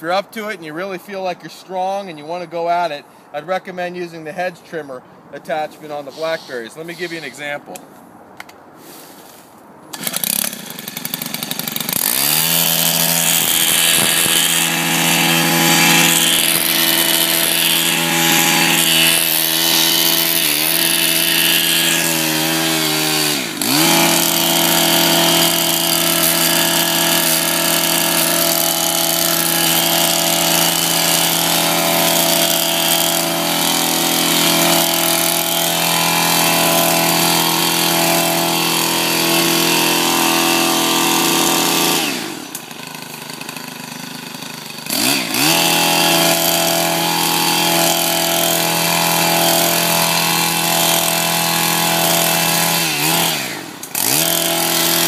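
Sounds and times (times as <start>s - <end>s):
hedge trimmer engine revving: 9.9s - 55.0s.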